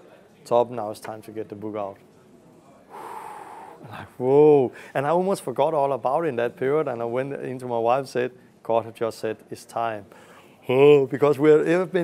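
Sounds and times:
man gasping: 0:02.9 - 0:05.0, 0:10.1 - 0:10.6.

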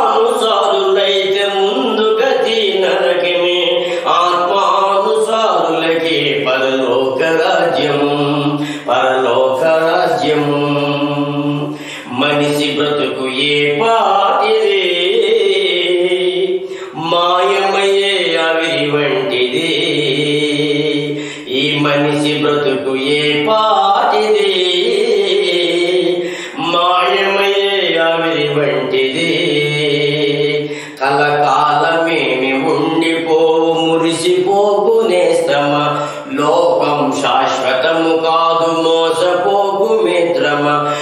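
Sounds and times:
man singing devotional song: 0:00.0 - 0:41.0.

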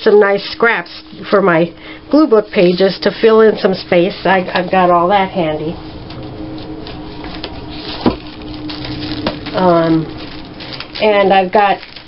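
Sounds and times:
steady low hum: 0:00.0 - 0:12.0
paper rustling: 0:05.9 - 0:12.0.

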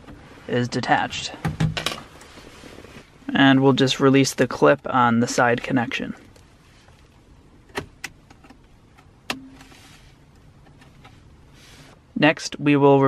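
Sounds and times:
quiet handling: 0:00.0 - 0:12.2.

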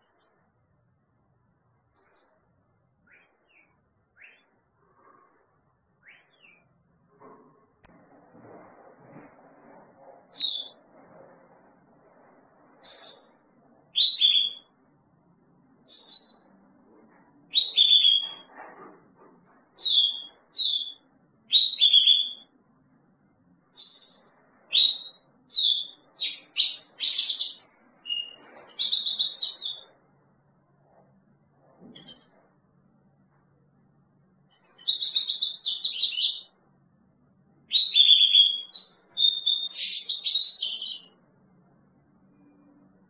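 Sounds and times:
goldfinch chirps and twittering: 0:10.3 - 0:10.8, 0:12.8 - 0:13.4, 0:14.0 - 0:14.7, 0:15.8 - 0:16.5, 0:17.5 - 0:18.5, 0:19.4 - 0:22.5, 0:23.7 - 0:29.9, 0:31.9 - 0:32.4, 0:34.5 - 0:36.5, 0:37.7 - 0:41.2.

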